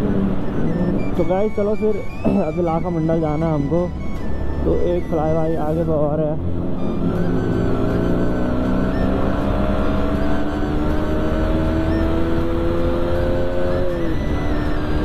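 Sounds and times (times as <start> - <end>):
motorcycle engine accelerating: 0.0 - 2.8, 6.4 - 15.0.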